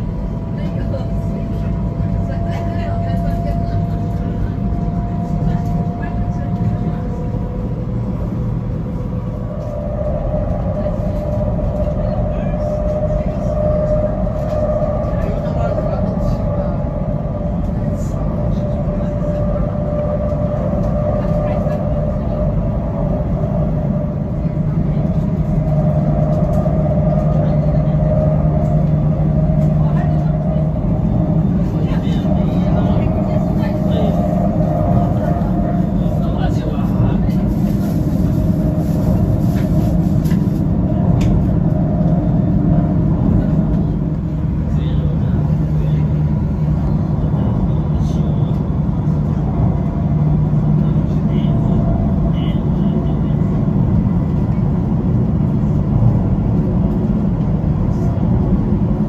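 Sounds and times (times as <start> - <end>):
constant whine: 0.0 - 59.0
train low rumble: 0.0 - 59.0.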